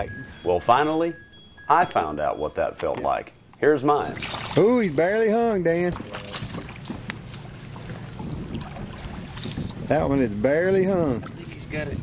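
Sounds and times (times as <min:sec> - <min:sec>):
water lapping against boat: 0:04.2 - 0:12.0.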